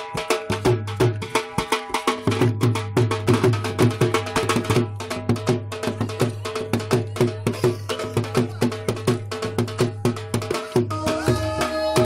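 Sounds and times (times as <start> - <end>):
dhol drum fast rhythm: 0.0 - 12.0.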